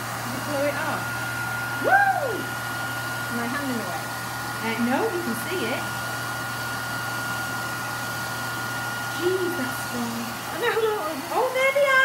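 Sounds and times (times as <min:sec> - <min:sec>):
hair dryer running: 0:00.0 - 0:12.0.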